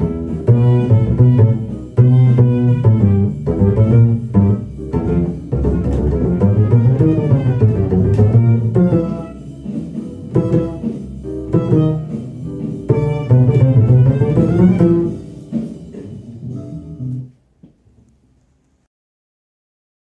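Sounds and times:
double bass plucked jazz line: 0.0 - 17.3.

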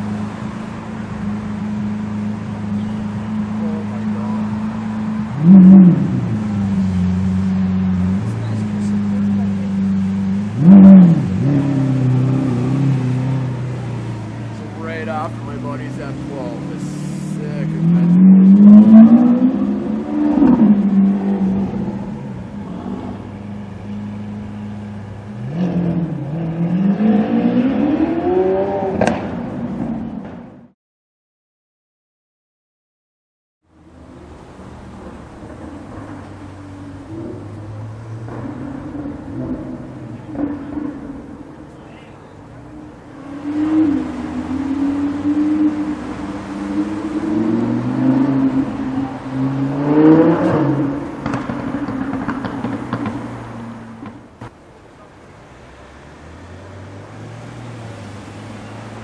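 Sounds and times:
car engine idling and revving: 0.0 - 30.8, 33.6 - 59.0.

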